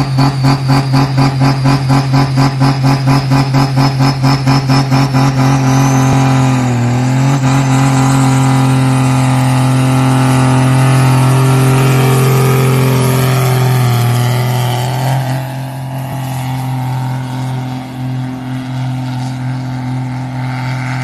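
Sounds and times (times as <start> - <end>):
diesel tractor engine under load: 0.0 - 21.0.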